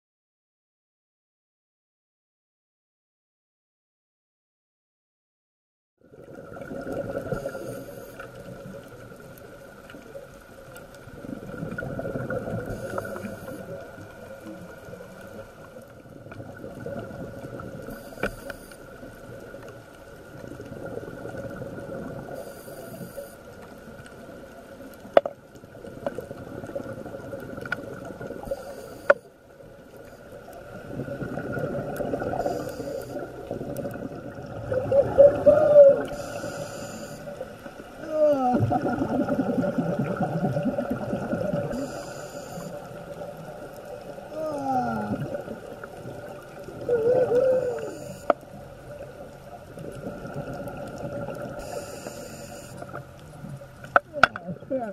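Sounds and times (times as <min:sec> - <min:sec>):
exhaled bubbles gurgling: 0:06.0 - 0:54.9
regulator hiss on inhale: 0:07.3 - 0:08.8, 0:12.6 - 0:13.8, 0:17.8 - 0:19.1, 0:22.3 - 0:23.7, 0:28.4 - 0:29.4, 0:32.3 - 0:33.5, 0:36.0 - 0:37.8, 0:41.6 - 0:43.2, 0:47.4 - 0:48.6, 0:51.4 - 0:53.0.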